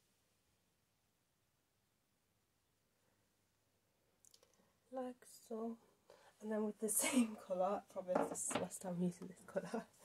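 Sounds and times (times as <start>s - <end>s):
woman speaking: 4.9s - 10.0s.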